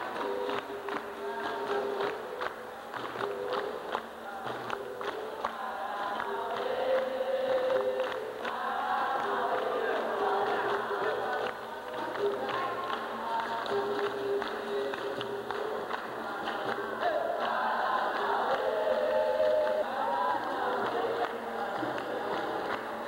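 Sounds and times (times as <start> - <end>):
group singing in chorus: 0.0 - 23.0
hand clapping: 0.0 - 23.0.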